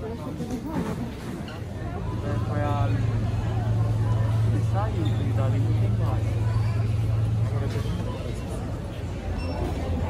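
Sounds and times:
crowd chatter: 0.0s - 10.0s
steady low hum: 1.6s - 10.0s.

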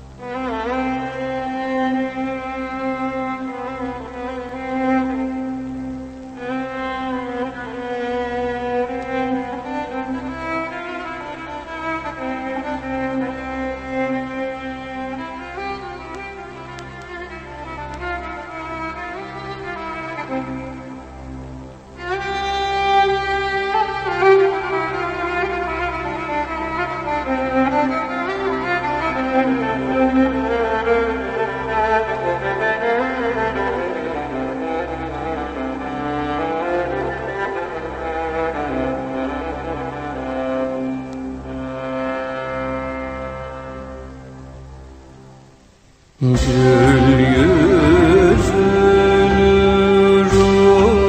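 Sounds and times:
bowed strings slow melody: 0.0s - 51.0s
low drone: 46.2s - 51.0s.

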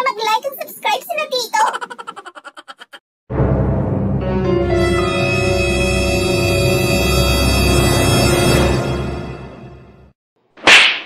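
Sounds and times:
dramatic music: 3.3s - 10.2s
short sharp swish: 10.6s - 11.0s.

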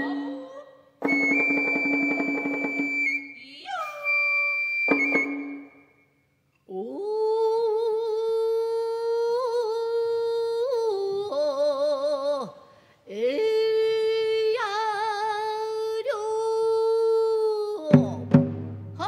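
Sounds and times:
woman singing long held note: 0.0s - 0.8s
bamboo flute high note: 0.0s - 6.0s
taiko drum roll: 1.0s - 3.2s, 17.9s - 19.0s.

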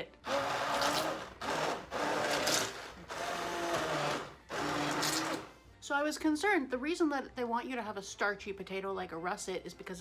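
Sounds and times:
immersion blender pureeing soup: 0.2s - 5.5s.

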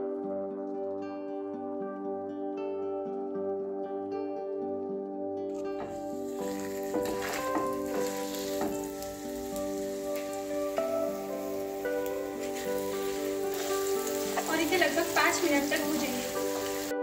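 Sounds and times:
background music with held notes: 0.0s - 17.0s
food sizzling in frying pan: 5.7s - 17.0s
wooden spatula knocking and scraping: 5.8s - 10.6s, 11.8s - 14.4s.

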